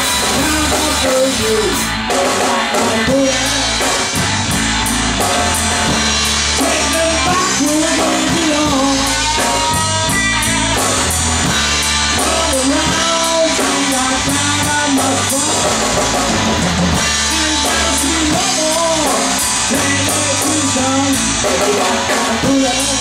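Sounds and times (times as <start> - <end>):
bass guitar: 0.0 - 23.0
drum kit: 0.0 - 23.0
electric guitar with bent notes: 0.0 - 23.0.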